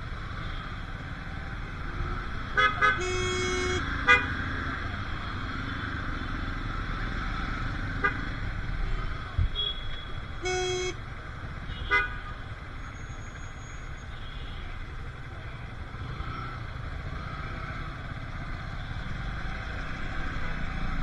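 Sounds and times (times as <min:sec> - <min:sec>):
rumble of traffic engines: 0:00.0 - 0:21.0
vehicle horn toot: 0:02.6 - 0:04.3, 0:09.5 - 0:11.0.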